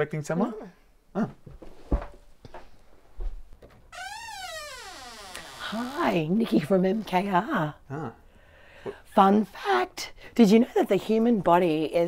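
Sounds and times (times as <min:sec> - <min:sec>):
door hinges squeaking: 0:03.9 - 0:06.2.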